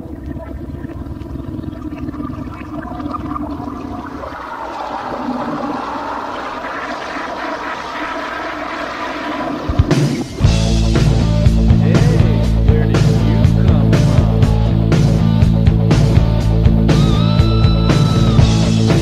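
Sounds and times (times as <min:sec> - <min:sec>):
wash of noise with low tones: 0:00.0 - 0:10.6
rock band playing: 0:09.7 - 0:19.0.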